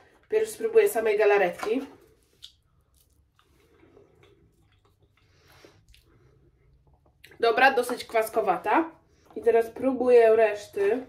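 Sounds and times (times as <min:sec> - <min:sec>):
faint mouth sounds tasting: 0:02.1 - 0:07.4.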